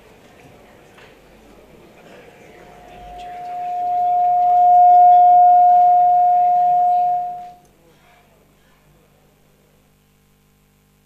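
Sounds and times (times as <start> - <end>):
feedback whistling tone: 2.6 - 7.6.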